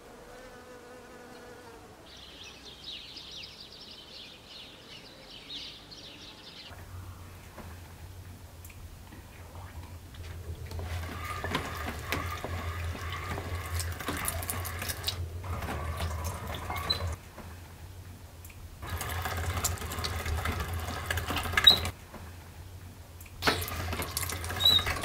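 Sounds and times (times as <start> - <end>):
hand-cranked meat grinder grinding: 10.6 - 17.2, 18.8 - 21.9, 23.4 - 25.0.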